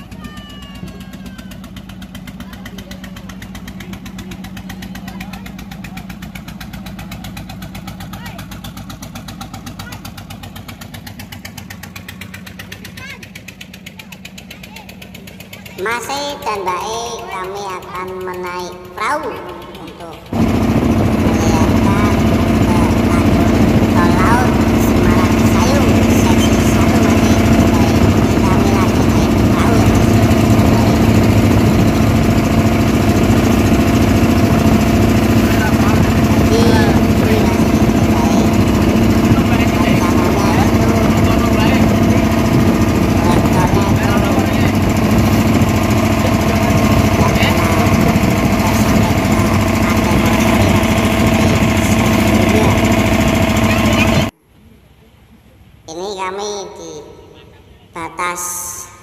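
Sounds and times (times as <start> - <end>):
boat engine running: 0.0 - 59.0.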